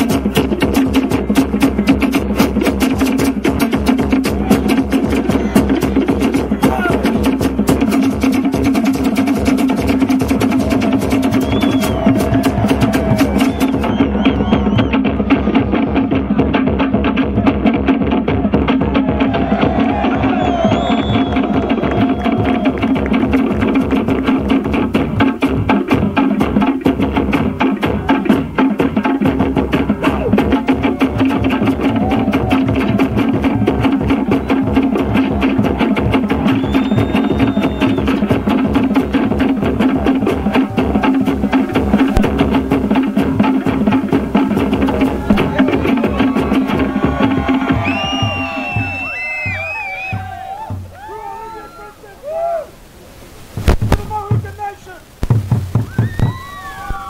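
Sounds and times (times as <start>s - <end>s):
rapid wooden strikes: 0.0s - 49.7s, 53.6s - 57.0s
fast drumming: 0.0s - 51.1s, 53.6s - 57.0s
high wavering calls: 10.4s - 15.1s, 29.0s - 53.4s, 55.8s - 57.0s.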